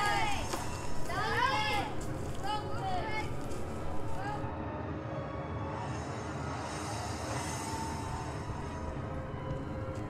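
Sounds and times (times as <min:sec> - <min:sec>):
eerie music drone: 0:00.0 - 0:10.0.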